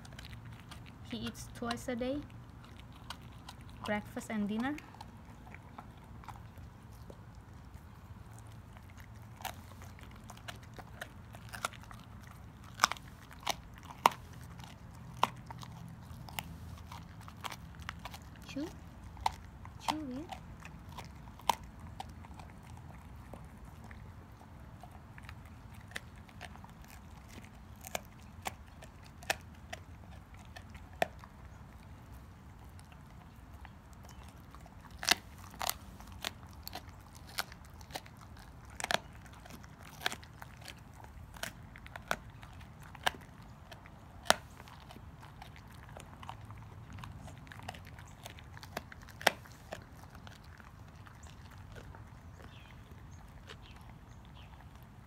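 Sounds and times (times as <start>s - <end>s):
dog chewing: 0.0s - 55.0s
dog crunching bone: 0.0s - 55.0s.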